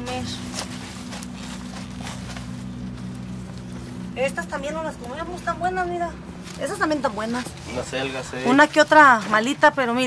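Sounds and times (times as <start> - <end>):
leafy greens rustling: 0.0 - 9.6
steady low hum: 0.0 - 10.0.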